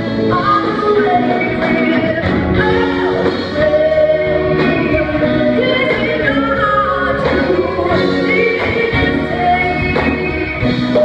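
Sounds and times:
bass guitar: 0.0s - 11.0s
drums: 0.0s - 11.0s
electric and acoustic guitars: 0.0s - 11.0s
keyboard: 0.0s - 11.0s.

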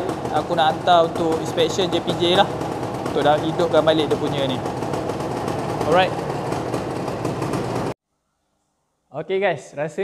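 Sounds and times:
two-stroke motorcycle engine running: 0.0s - 8.0s.

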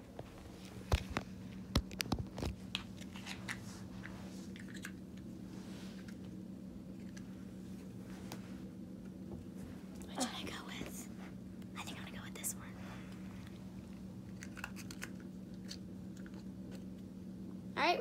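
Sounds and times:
rustling and handling noises: 0.0s - 11.7s
steady low hum: 0.0s - 18.0s.

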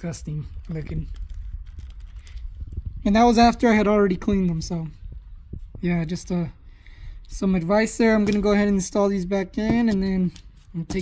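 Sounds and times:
low rumble: 0.0s - 9.2s
plastic bag rustling: 0.3s - 3.0s.

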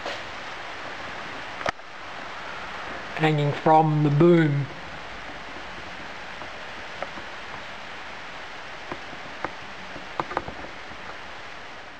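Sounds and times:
steady background hiss: 0.0s - 11.9s.

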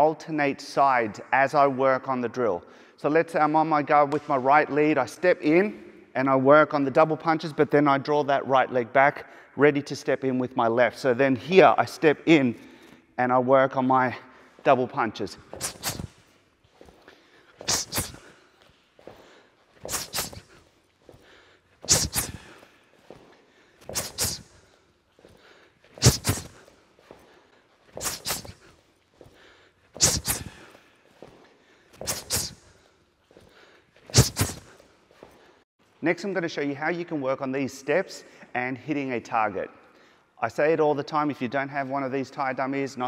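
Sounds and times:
footsteps and punches: 15.4s - 35.6s.

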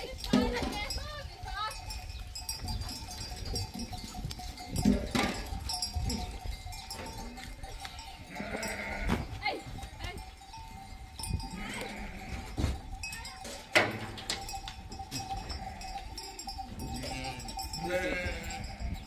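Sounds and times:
goats bleating: 7.0s - 10.2s, 11.4s - 12.8s, 15.2s - 19.0s.

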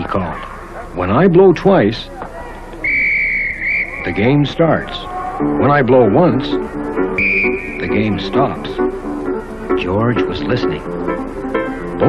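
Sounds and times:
referee's whistle: 2.8s - 4.4s, 7.2s - 8.2s.

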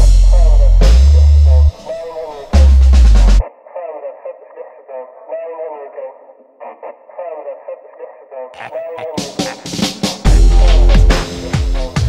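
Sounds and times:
filtered voice sample: 3.3s - 11.6s
electronic drums: 8.9s - 12.0s
heavy bass hit: 10.3s - 11.6s.

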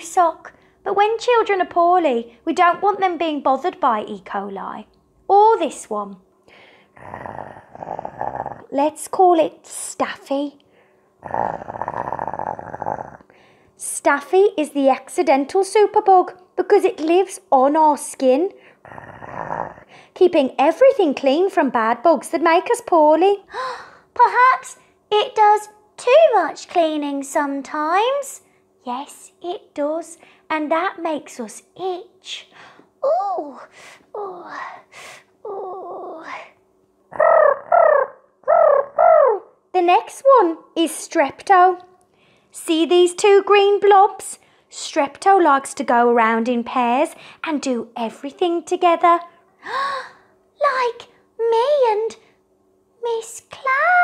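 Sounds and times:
person growling: 7.0s - 8.7s, 11.2s - 13.3s, 18.8s - 19.9s.

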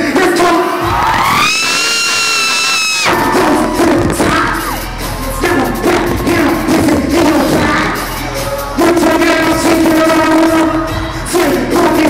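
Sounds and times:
loud hip-hop concert music: 0.0s - 12.0s
person whooping: 0.9s - 4.9s.

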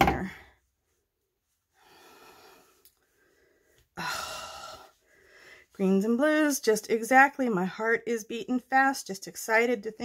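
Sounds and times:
woman breathing: 1.7s - 5.8s
woman speaking: 5.8s - 10.0s.

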